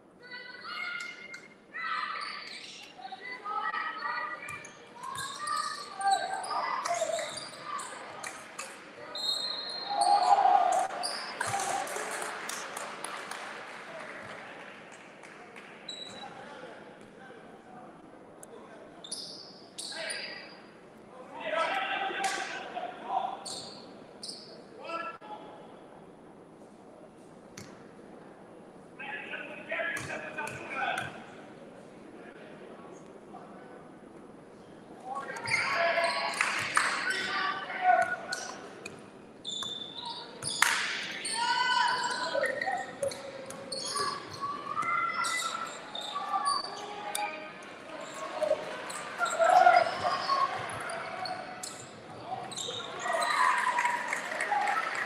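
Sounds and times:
voices shouting in hall: 0:09.0 - 0:12.3, 0:39.9 - 0:55.0.

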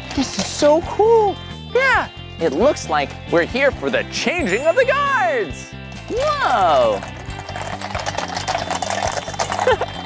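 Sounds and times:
background music: 0:00.0 - 0:10.0
horses hooves clip-clopping on road: 0:06.6 - 0:10.0.

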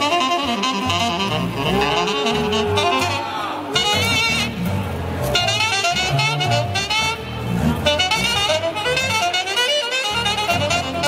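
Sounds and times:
keyboard lead melody bending pitch: 0:00.0 - 0:11.0
low bass line: 0:01.0 - 0:09.0.

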